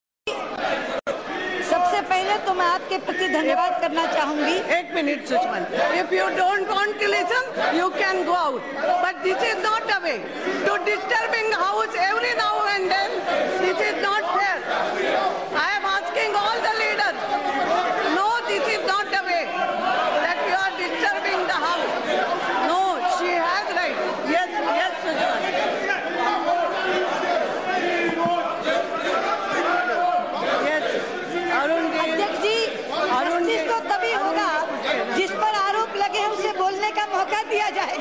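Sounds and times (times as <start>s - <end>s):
crowd shouting in echoing hall: 0.3s - 38.0s
many voices talking: 0.3s - 38.0s.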